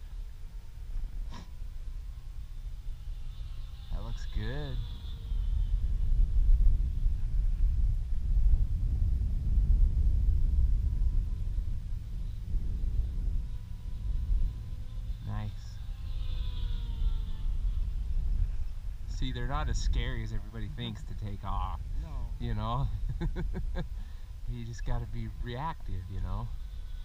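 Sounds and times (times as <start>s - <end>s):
model plane motor whine: 0.0s - 7.1s, 10.5s - 19.0s, 25.8s - 27.0s
wind buffeting microphone: 0.0s - 27.0s.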